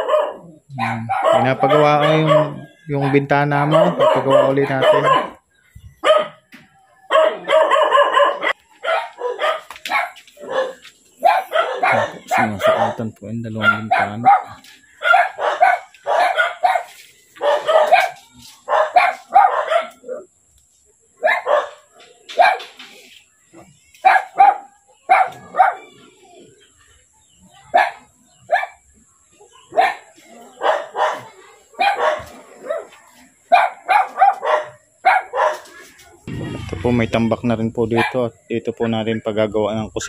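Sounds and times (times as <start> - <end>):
dog barking: 0.0 - 5.4, 6.0 - 6.5, 7.1 - 20.3, 21.2 - 22.8, 24.0 - 26.0, 27.7 - 28.8, 29.5 - 35.8, 37.9 - 38.3.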